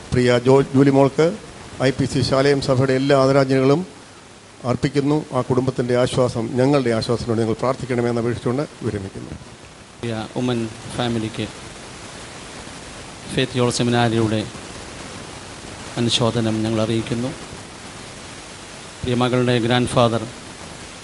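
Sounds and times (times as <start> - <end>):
steady hiss: 0.0 - 21.0
man speaking into microphone: 0.1 - 4.0, 4.6 - 9.4, 10.0 - 11.6, 13.2 - 14.6, 15.9 - 17.5, 19.0 - 20.4.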